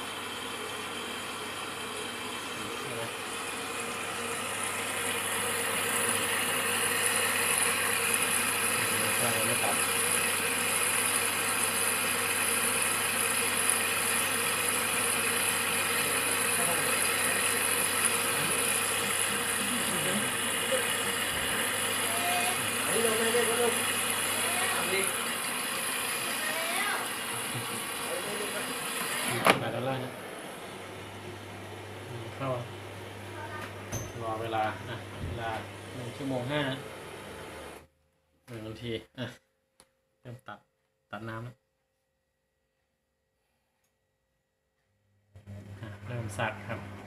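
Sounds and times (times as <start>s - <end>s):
water pouring into washing machine: 2.6s - 29.9s.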